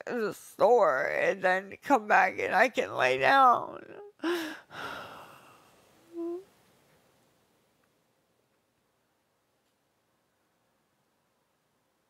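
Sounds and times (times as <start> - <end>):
woman sighing: 4.2 - 6.5
woman humming: 6.0 - 6.5.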